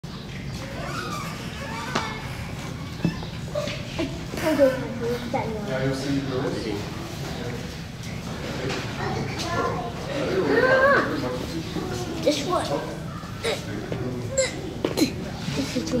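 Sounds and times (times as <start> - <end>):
people talking: 6.5 - 16.0.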